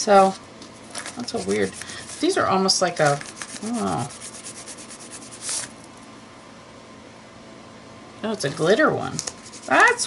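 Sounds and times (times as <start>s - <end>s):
crayon scribbling on paper: 3.4s - 5.6s, 9.4s - 10.0s.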